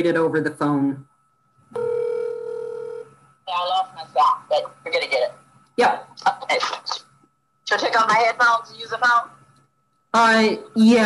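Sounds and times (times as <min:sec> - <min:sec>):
steady telephone tone: 0:01.8 - 0:03.1.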